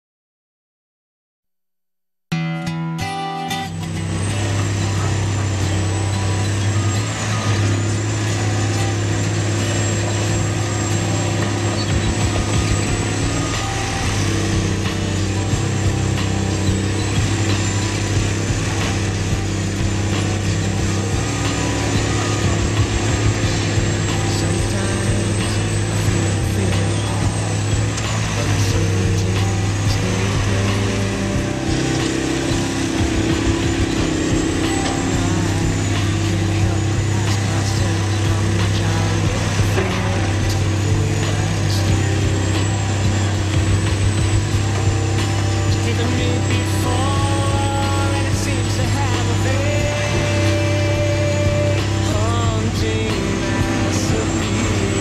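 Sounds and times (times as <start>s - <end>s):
thin high whine: 3.3s - 55.0s
excavator diesel engine running: 3.5s - 55.0s.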